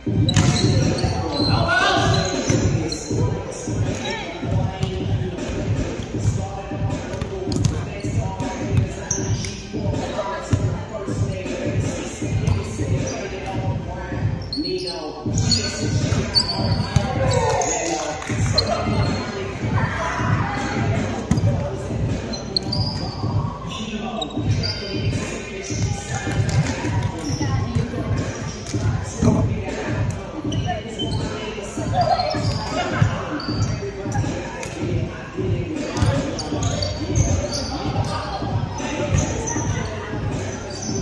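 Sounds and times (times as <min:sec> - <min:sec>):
players' voices: 0:00.0 - 0:41.0.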